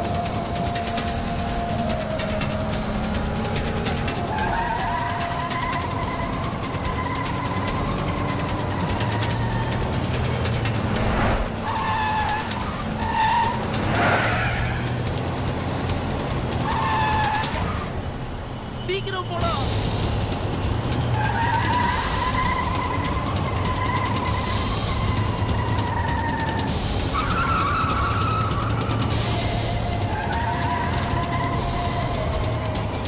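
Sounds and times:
car engines running hard: 0.0s - 33.0s
film score: 0.0s - 33.0s.

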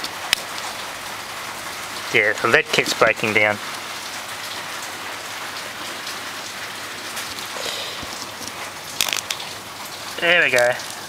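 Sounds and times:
rain hiss: 0.0s - 11.0s.

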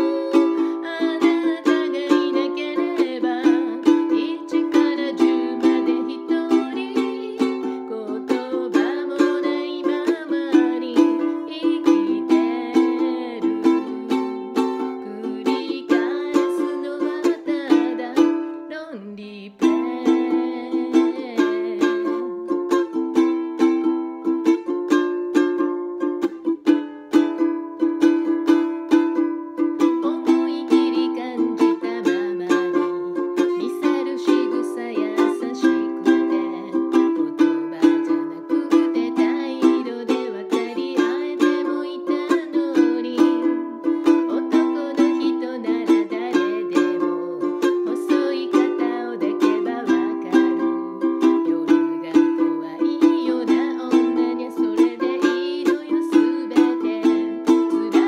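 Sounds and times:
ukulele strumming chords: 0.0s - 58.0s.

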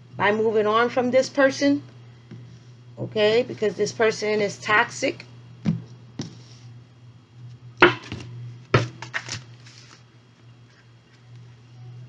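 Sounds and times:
cards slapping: 7.8s - 10.0s
cards being shuffled: 8.8s - 10.1s.

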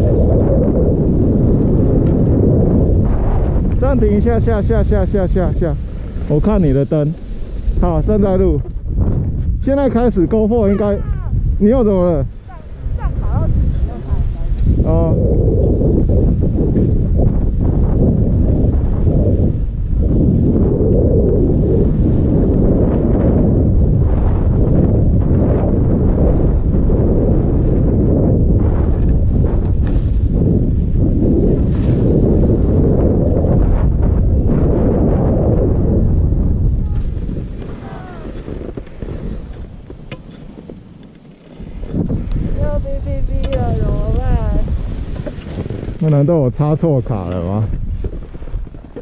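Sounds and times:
wind buffeting microphone: 0.0s - 49.0s
skis sliding through snow: 0.1s - 14.9s, 27.2s - 33.8s, 36.3s - 49.0s.

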